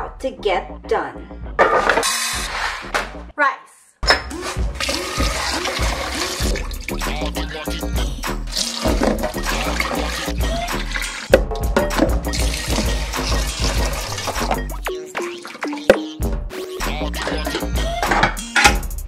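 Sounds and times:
background music with steady beat: 4.0 - 19.0
rinse water poured off: 4.3 - 7.0, 8.5 - 11.3, 12.3 - 14.6
tap water running into a pot: 4.3 - 7.0, 8.5 - 11.4, 12.3 - 16.0.

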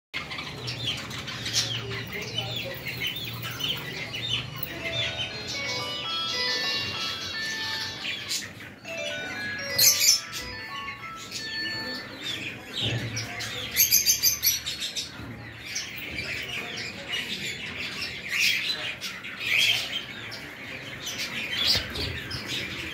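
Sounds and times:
budgerigars chirping: 0.2 - 22.9
held notes at stepping pitches: 4.6 - 12.7.

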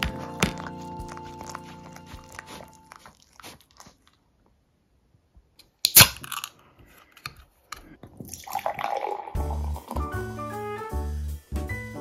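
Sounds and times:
background jazz music: 0.0 - 3.0, 9.1 - 12.0
beer pouring foaming into glass: 8.3 - 10.0.

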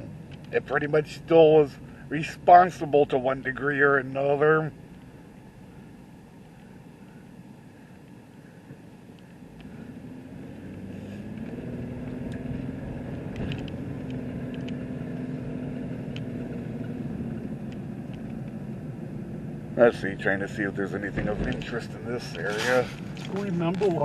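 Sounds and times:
car engine from inside cabin: 0.0 - 24.0
road noise: 0.0 - 24.0
faint ticks: 13.3 - 14.8.

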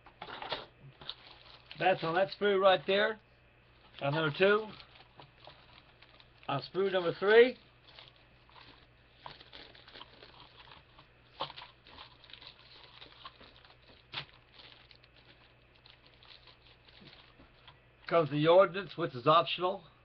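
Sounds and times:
plastic packaging crinkling: 0.9 - 19.1.

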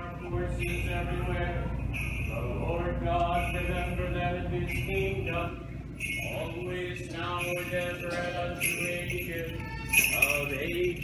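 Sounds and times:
person chanting liturgy: 0.0 - 11.0.

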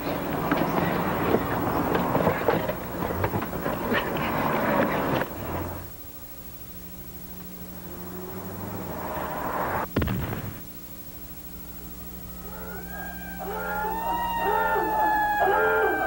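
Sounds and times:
car engine hum: 0.0 - 12.8.

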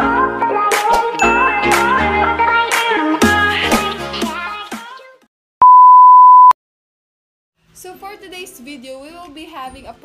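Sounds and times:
electronic beep: 5.6 - 6.6.

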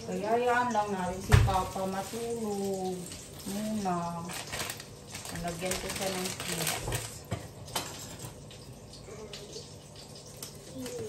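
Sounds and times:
plastic packet rustling: 0.1 - 8.5.

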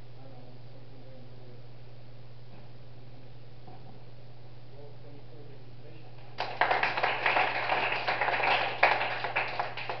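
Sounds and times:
group applauding: 6.2 - 10.0.

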